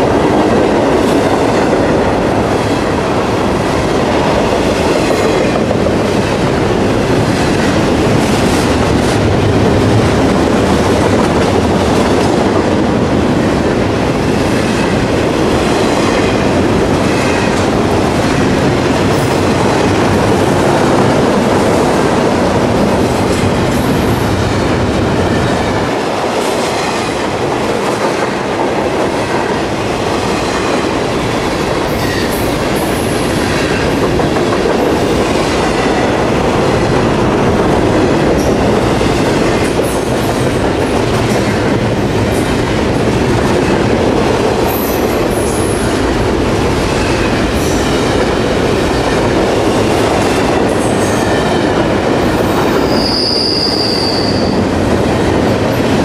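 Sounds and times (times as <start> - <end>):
train wheels rumbling on rails: 0.0 - 56.0
high wheel squeal: 52.8 - 54.6.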